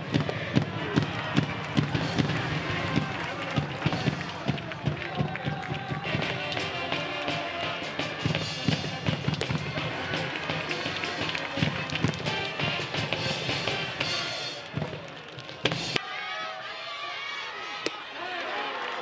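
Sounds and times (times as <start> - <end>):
brass band and drums: 0.0 - 15.0
crowd voices: 0.0 - 19.0.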